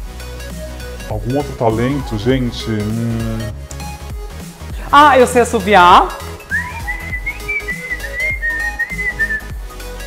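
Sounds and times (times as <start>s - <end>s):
person whistling high tone: 6.5s - 9.6s.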